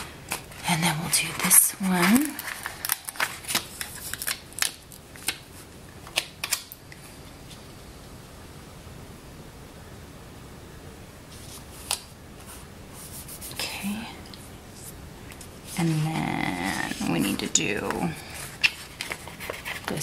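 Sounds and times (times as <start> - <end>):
steady low hiss: 0.0 - 20.0
sticker paper crackling: 0.3 - 5.4, 15.7 - 20.0.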